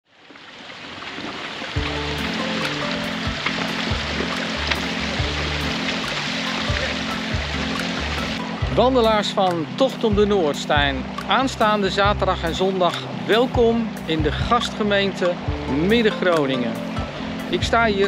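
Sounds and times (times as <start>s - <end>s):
fountain jets splashing: 0.1s - 18.0s
background music bass beat: 1.8s - 14.8s.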